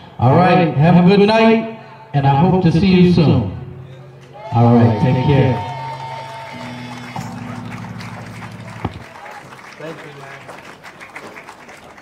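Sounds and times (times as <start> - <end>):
held guitar tone: 5.7 - 9.0.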